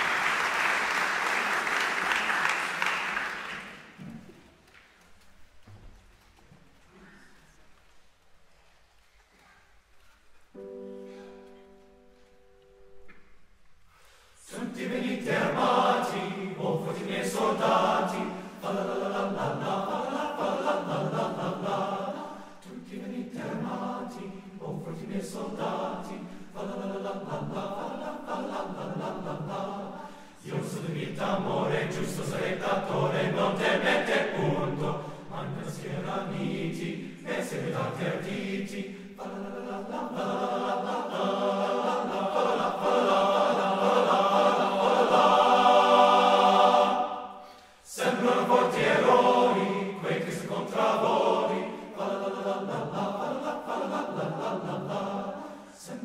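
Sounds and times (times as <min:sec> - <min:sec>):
men's choir singing: 0:14.4 - 0:56.0.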